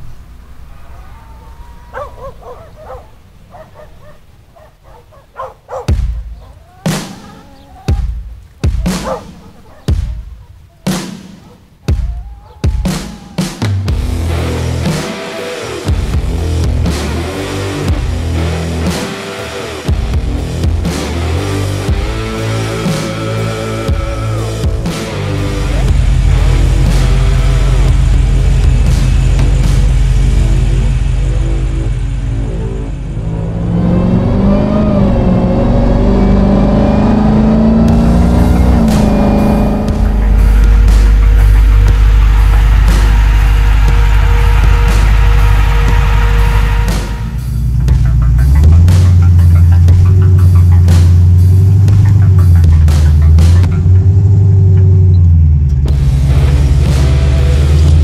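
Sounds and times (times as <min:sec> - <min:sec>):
truck engine revving: 0:00.0 - 0:58.0
music with heavy bass beat: 0:05.8 - 0:58.0.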